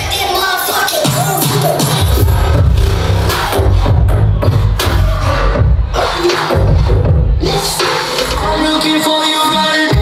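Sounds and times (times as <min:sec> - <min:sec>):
electronic dance music with heavy bass: 0:00.0 - 0:10.0.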